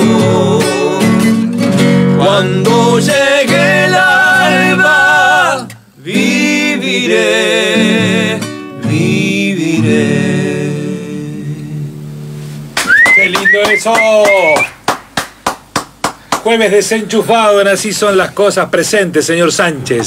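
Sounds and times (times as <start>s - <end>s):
two men singing: 0.0s - 1.5s, 2.2s - 12.0s
strummed acoustic guitar: 0.0s - 13.8s
loud voices calling out: 12.9s - 14.8s.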